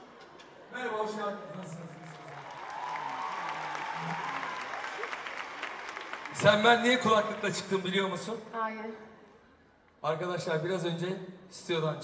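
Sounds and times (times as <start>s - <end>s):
audience applauding: 1.4s - 8.2s.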